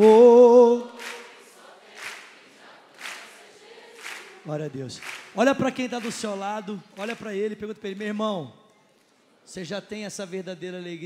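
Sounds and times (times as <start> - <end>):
congregation clapping in a hall: 0.0 - 9.2.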